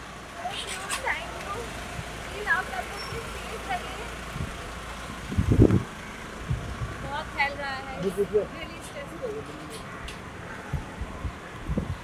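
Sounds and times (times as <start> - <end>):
street traffic rumbling: 0.0 - 12.0.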